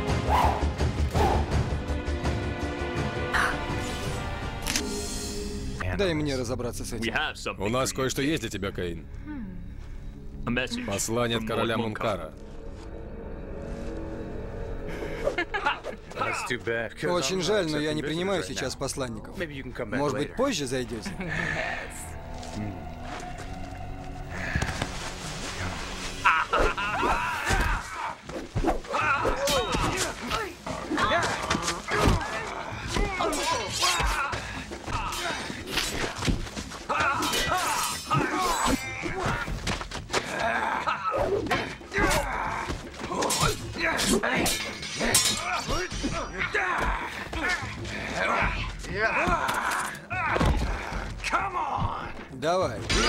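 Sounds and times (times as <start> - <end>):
metal blades clashing: 33.0 - 34.3, 37.1 - 39.0, 43.2 - 46.5.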